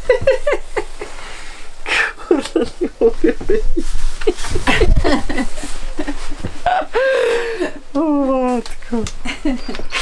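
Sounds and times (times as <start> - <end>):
man laughing: 0.0 - 1.2, 1.9 - 7.8
rustling: 0.0 - 10.0.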